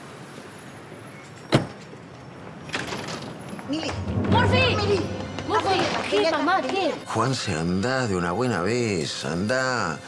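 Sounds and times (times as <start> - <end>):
low street background: 0.0 - 10.0.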